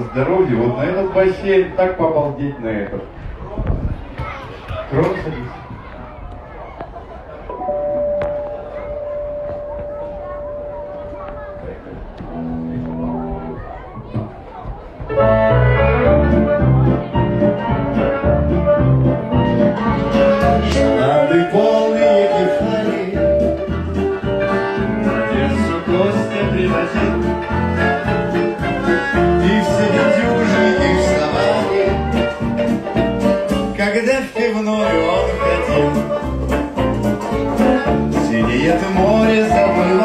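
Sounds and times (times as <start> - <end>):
live band playing: 15.1 - 40.0.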